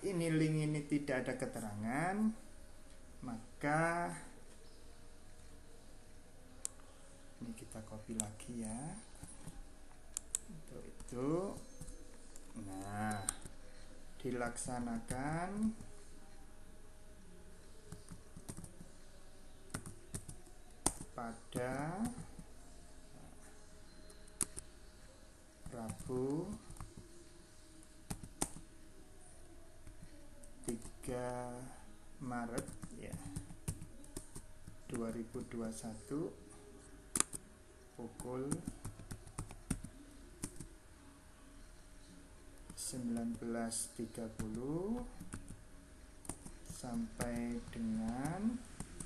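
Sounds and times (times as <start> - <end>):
computer keyboard typing: 7.8 - 13.5, 17.9 - 18.8, 19.7 - 22.2, 28.0 - 28.6, 32.4 - 35.8, 37.1 - 37.5, 38.1 - 40.7, 42.6 - 45.6, 46.2 - 49.0
computer keyboard keystrokes: 38.2 - 40.7.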